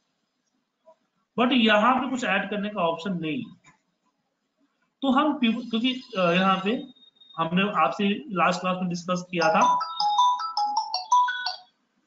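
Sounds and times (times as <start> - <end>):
electronic phone ringtone melody: 9.4 - 11.7.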